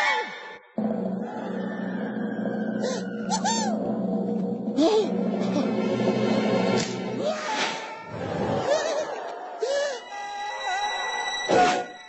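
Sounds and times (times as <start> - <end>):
squeaky chirps: 1.9 - 3.8.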